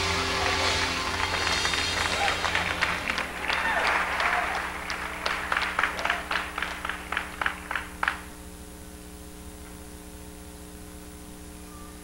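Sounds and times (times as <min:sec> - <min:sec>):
audience applause: 0:00.0 - 0:08.3
steady electrical hum: 0:00.0 - 0:12.0.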